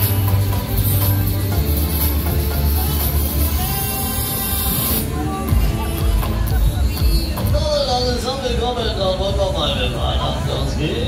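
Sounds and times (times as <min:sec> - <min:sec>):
loud fairground music: 0:00.0 - 0:11.0.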